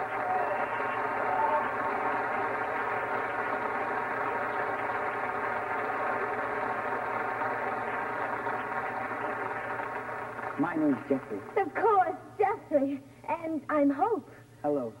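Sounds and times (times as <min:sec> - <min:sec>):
audience applause: 0:00.0 - 0:11.6.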